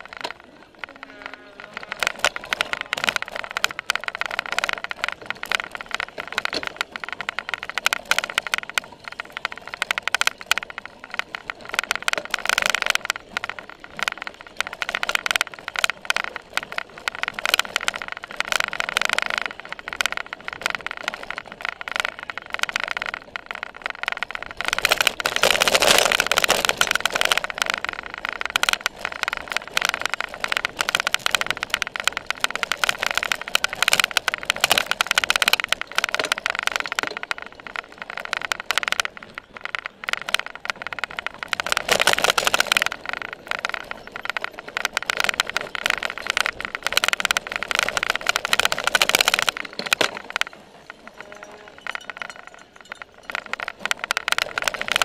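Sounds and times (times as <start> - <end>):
bike rattling over rough ground: 0.0 - 55.0
tyre and drivetrain noise: 0.0 - 55.0.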